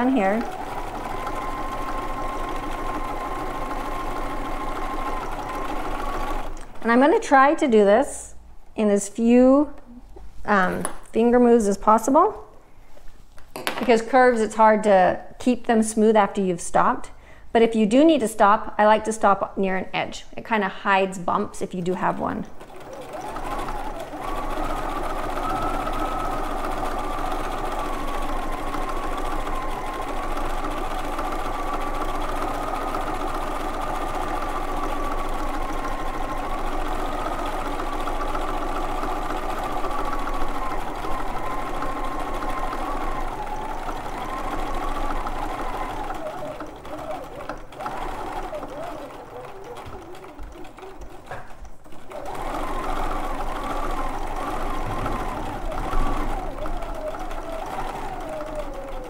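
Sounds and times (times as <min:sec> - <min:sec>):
sewing machine motor whine: 0:00.0 - 0:07.7, 0:21.7 - 0:59.0.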